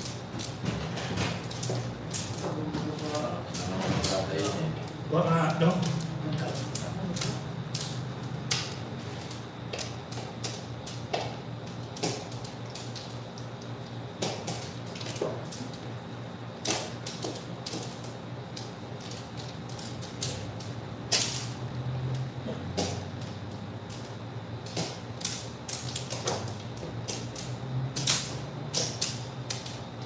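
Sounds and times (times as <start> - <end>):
steady low hum: 0.0 - 30.0
mahjong tiles clicking and clacking: 1.3 - 4.7, 5.3 - 11.3, 16.6 - 21.5, 23.1 - 29.8.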